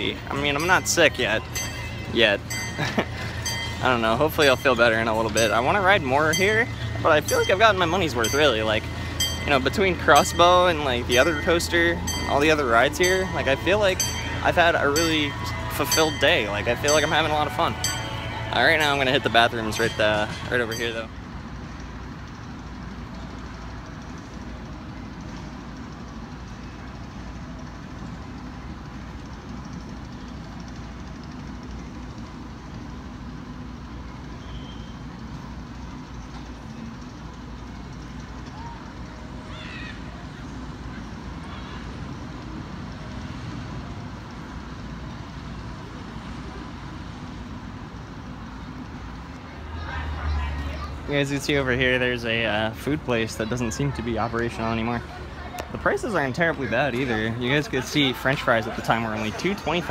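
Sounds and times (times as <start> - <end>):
low outdoor rumble: 0.0 - 59.9.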